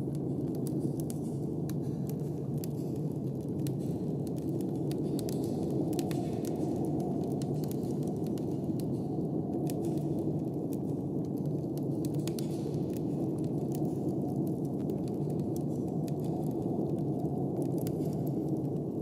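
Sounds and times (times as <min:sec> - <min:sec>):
wood fire crackling and popping: 0:00.0 - 0:19.0.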